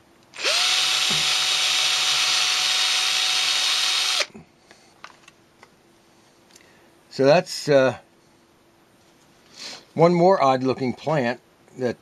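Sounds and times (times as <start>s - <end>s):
power drill drilling: 0.4s - 4.3s.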